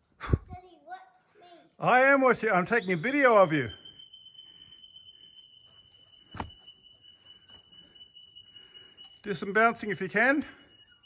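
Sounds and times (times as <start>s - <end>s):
high-pitched insect drone: 1.5s - 11.0s.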